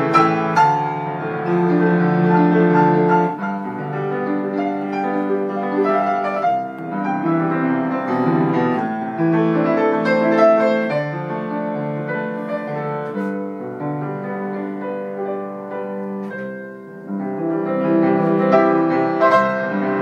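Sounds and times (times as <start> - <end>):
solo grand piano: 0.0 - 20.0.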